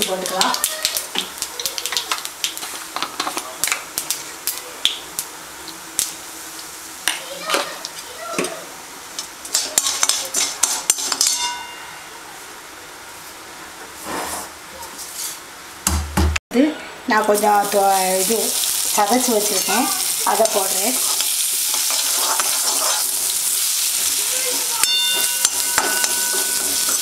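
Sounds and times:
oil sizzling in a pan: 0.0 - 11.4, 17.1 - 27.0
ladle clinking against pan: 24.8 - 27.0.

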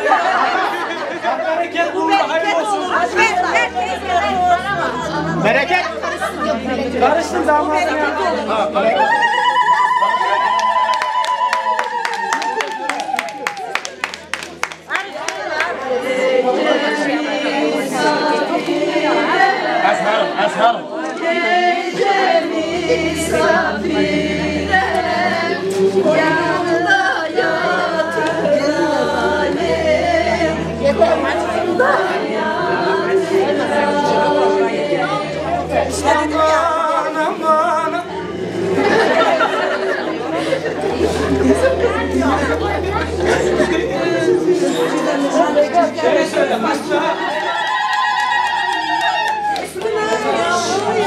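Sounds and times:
women chattering: 0.0 - 10.0, 26.2 - 47.6
women singing together: 0.0 - 10.4, 14.9 - 51.0.

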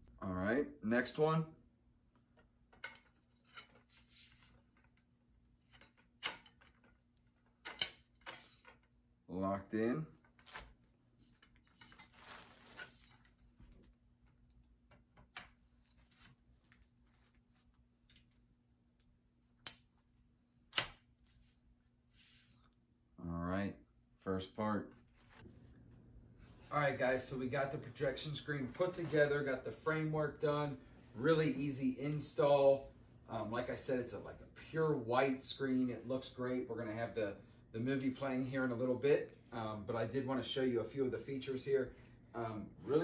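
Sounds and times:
metal poles clicking into joints: 5.7 - 8.9.

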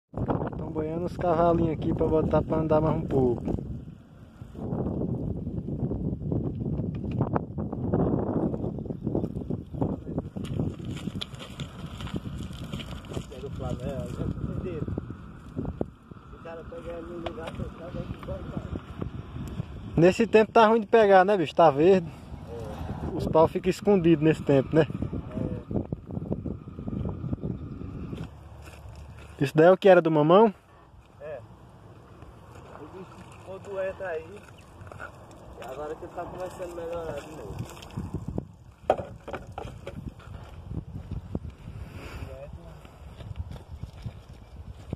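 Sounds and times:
wind rumbling on microphone: 0.1 - 29.4, 30.9 - 44.9
men talking quietly: 16.3 - 18.8, 35.5 - 37.8
small knocks: 38.8 - 40.0.

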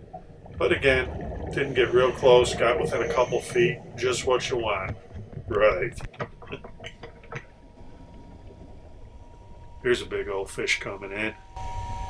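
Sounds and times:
faint steady tone: 0.0 - 6.0, 6.9 - 12.0
faint irregular clicks: 2.8 - 9.8.

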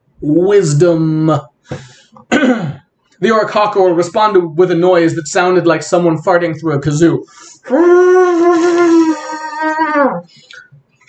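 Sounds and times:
man imitating bird call: 7.6 - 10.2.

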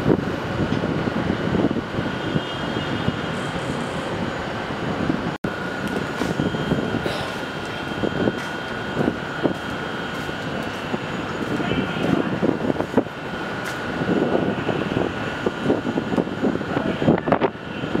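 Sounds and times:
city traffic noise: 0.0 - 18.0
faint steady whine: 0.0 - 18.0.

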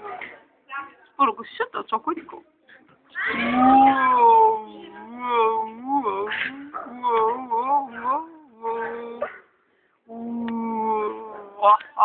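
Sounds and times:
girl making voice sounds into cone: 3.1 - 5.0.

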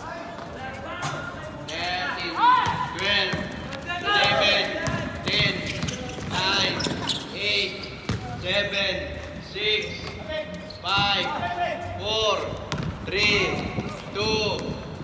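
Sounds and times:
sneakers squeaking on court: 2.6 - 8.4, 10.0 - 11.5, 12.7 - 15.0
ball bouncing: 12.7 - 14.8.

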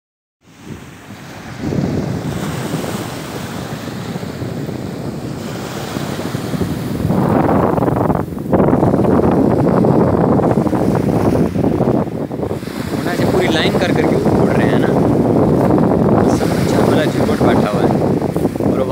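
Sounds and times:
wind buffeting microphone: 0.4 - 18.9
waves washing onto pebbles: 0.5 - 9.9, 10.5 - 18.9.

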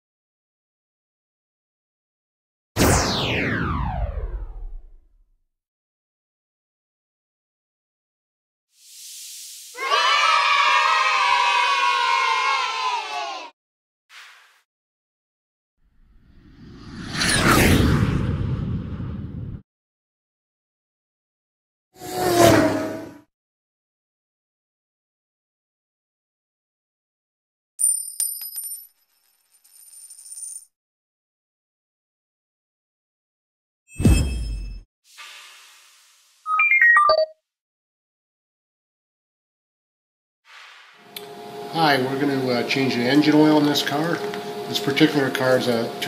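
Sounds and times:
children cheering and shouting: 9.8 - 13.6
high metallic clinks: 27.8 - 30.7
short hiss: 35.1 - 36.5, 40.5 - 41.0.

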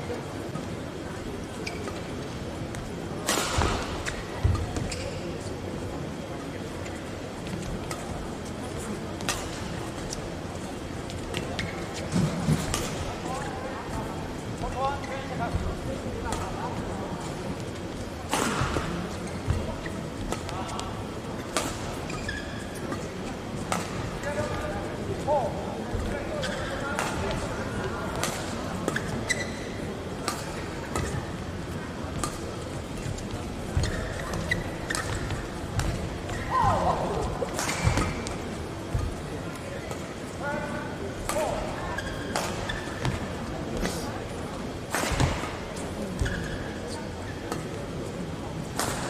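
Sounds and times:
murmur of voices: 0.0 - 49.0
shoes squeaking on court: 1.5 - 2.1, 4.0 - 5.3, 11.3 - 12.8, 21.9 - 23.1, 28.8 - 31.4, 32.2 - 36.5, 41.8 - 44.0, 45.1 - 47.7.

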